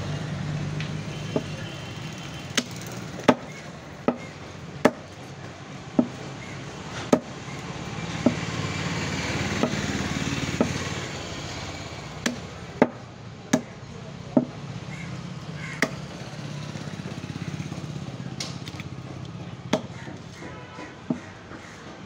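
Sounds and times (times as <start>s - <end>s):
meat cleaver chopping on wood: 2.6s - 5.1s, 6.0s - 6.3s, 7.0s - 7.4s, 8.2s - 8.4s, 9.5s - 9.9s, 10.5s - 10.8s, 12.2s - 13.8s, 19.4s - 22.0s.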